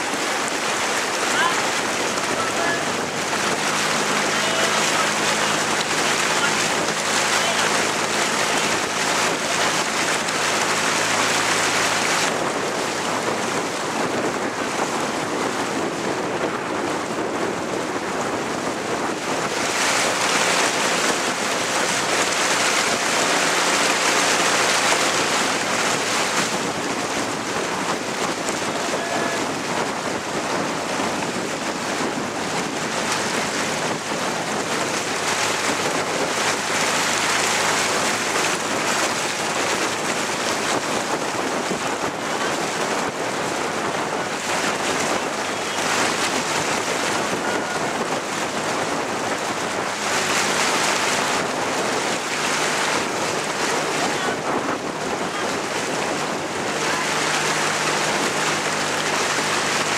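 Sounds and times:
paddles splashing water: 0.0 - 59.9
wind on microphone: 0.0 - 59.9.

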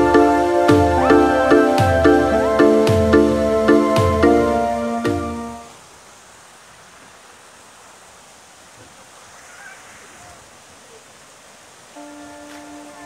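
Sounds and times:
music: 0.0 - 5.7, 12.0 - 13.0
river water rushing over rapids: 0.0 - 13.0.

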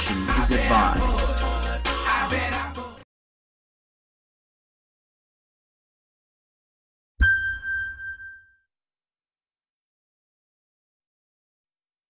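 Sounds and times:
bright ding: 7.2 - 8.7.

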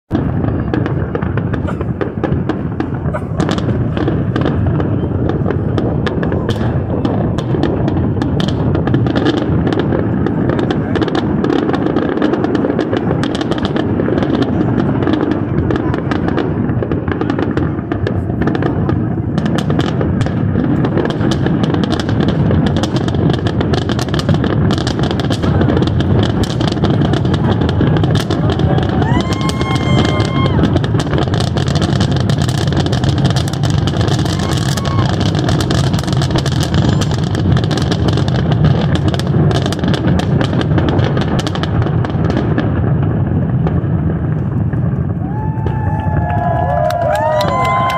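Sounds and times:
fireworks bangs and crackles: 0.1 - 47.9
people's voices: 0.2 - 8.9, 9.6 - 21.2, 23.7 - 37.4.

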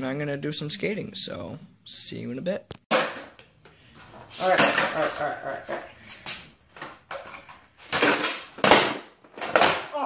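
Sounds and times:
skateboard clattering on concrete: 4.3 - 9.9.

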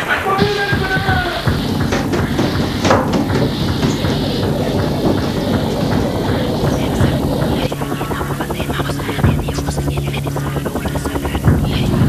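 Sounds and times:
sharp hit: 0.0 - 8.4
loud steady rumbling: 0.0 - 12.0.

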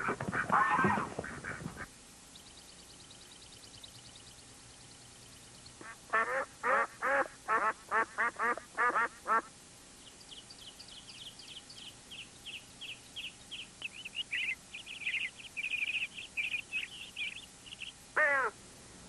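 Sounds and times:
duck quacking: 0.0 - 1.9, 5.8 - 9.5, 18.2 - 18.6
high chirps: 10.1 - 18.0.

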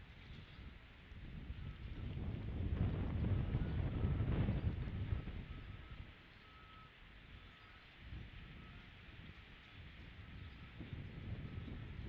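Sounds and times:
wind buffeting microphone: 0.0 - 6.3, 7.2 - 12.0
faint short high beeps: 5.5 - 7.9.

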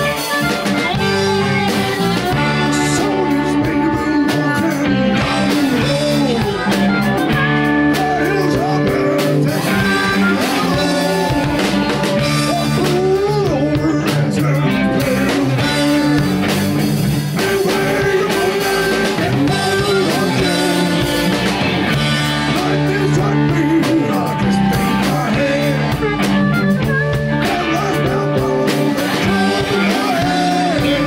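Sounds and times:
male singer: 0.0 - 16.6, 17.3 - 31.0
electric blues band playing: 0.0 - 31.0.

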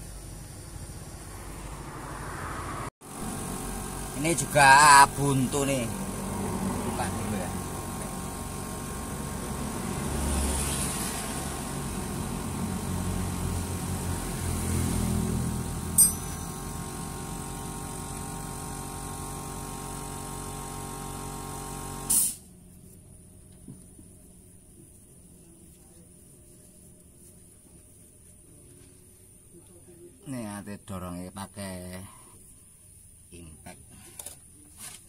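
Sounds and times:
engine humming: 0.0 - 18.6.

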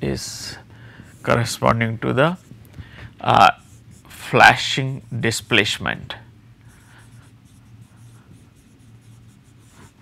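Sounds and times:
marker pen writing on whiteboard: 3.3 - 4.2, 6.7 - 10.0.

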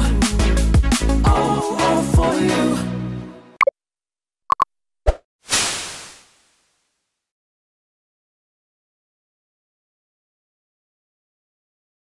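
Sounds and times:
pop sound effect: 4.5 - 6.0.

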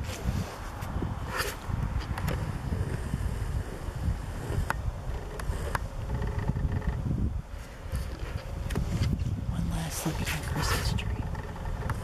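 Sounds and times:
wind buffeting microphone: 0.0 - 12.0
faint clicks: 4.5 - 7.0.

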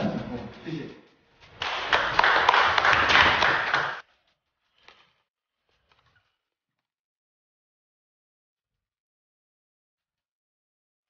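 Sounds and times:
audience applauding: 1.6 - 4.0.

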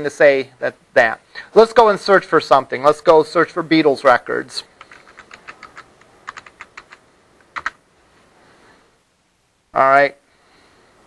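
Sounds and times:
keyboard keystrokes: 4.8 - 7.8.

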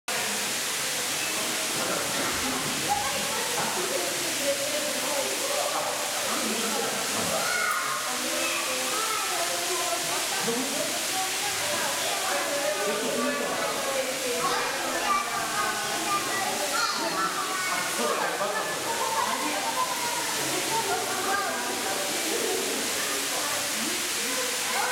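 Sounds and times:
indistinct chatter in echoing hall: 0.1 - 24.9.

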